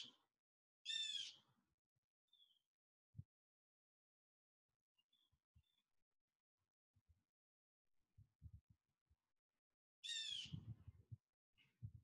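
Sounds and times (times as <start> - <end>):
bird squawk: 0.9 - 1.4, 10.0 - 10.6.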